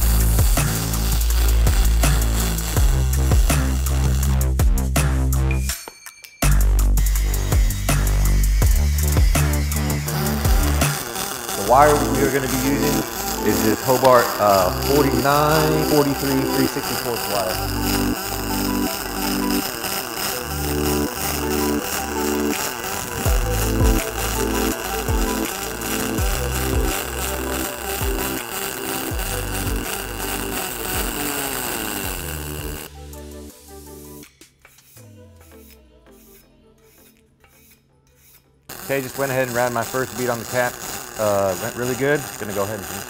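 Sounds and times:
faint regular ticks: 0.0 - 4.5, 7.0 - 32.9, 34.6 - 43.0
welding arc hiss and crackle: 0.0 - 5.5, 6.6 - 32.9, 37.6 - 43.0
background music with bass line: 0.0 - 5.8, 6.4 - 11.0, 11.6 - 19.6, 20.3 - 37.0.

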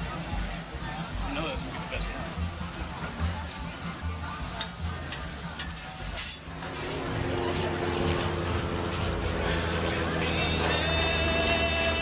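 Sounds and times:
food sizzling on a griddle: 0.0 - 6.7
music with held notes: 0.0 - 9.0
metal spatula scraping and tapping: 4.6 - 6.8.

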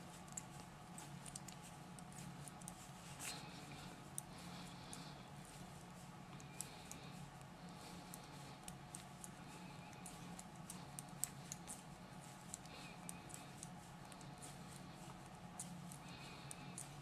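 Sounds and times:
low steady hum: 0.0 - 17.0
soft rustle: 0.0 - 17.0.

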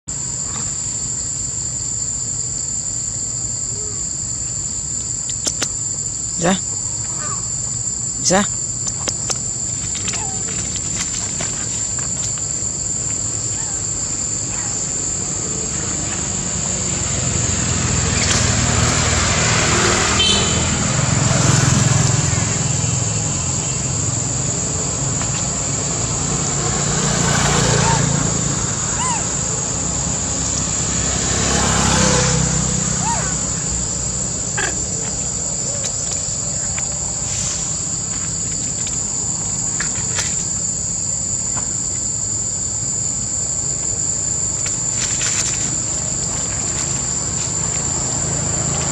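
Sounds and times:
high-pitched insect drone: 0.1 - 48.9
passing vehicles rumbling: 0.1 - 48.9.

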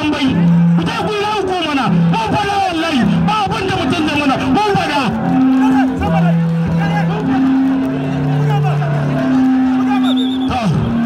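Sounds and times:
horn blowing low notes: 0.3 - 11.0.

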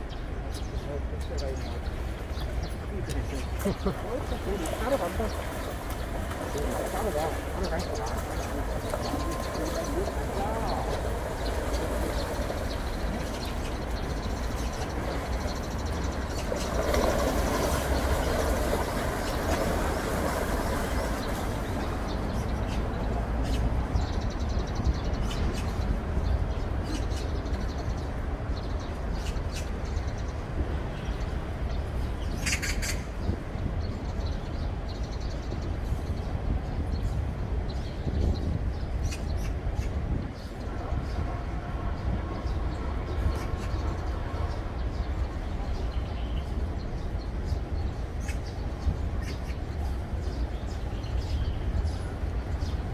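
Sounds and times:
wind rumble on microphone: 0.0 - 52.9
stream water rushing over stones: 3.9 - 22.3.

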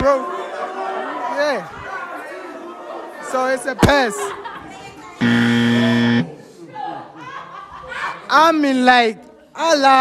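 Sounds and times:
flat buzzer tone: 5.2 - 6.3.

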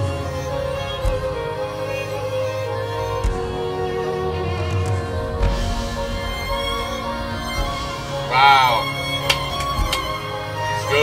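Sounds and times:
violin melody: 0.0 - 11.0
light percussion hits: 3.0 - 10.8.

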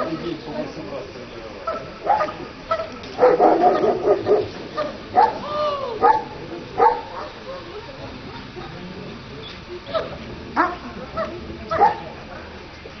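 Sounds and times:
dog yipping barks: 1.7 - 5.4, 6.0 - 7.4, 10.0 - 12.0.

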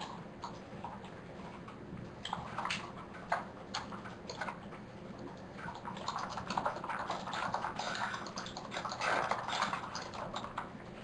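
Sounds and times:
computer keyboard typing: 2.3 - 10.7.

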